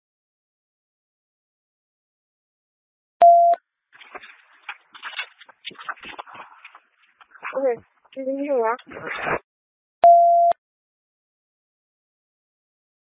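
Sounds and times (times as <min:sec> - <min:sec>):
garbled radio transmission: 0:05.0 - 0:09.4.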